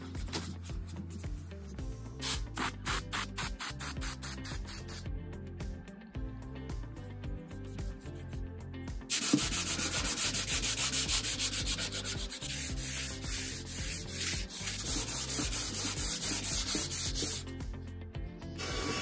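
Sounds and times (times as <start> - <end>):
hand sanding wood: 9.1 - 17.4.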